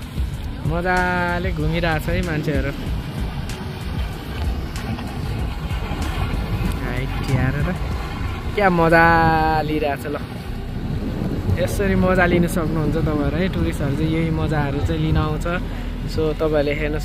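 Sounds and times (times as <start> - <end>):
outboard motor running: 0.0 - 17.0
wind and water rumble: 0.0 - 17.0.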